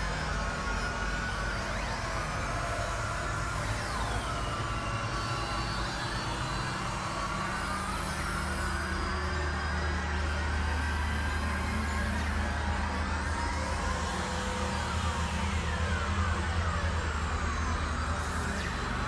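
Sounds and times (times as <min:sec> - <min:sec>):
gliding whistling tones: 0:00.1 - 0:19.0.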